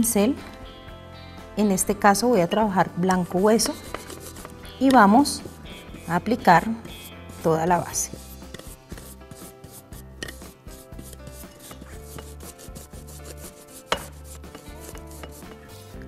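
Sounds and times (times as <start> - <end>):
paintbrush dabbing: 3.3 - 16.0.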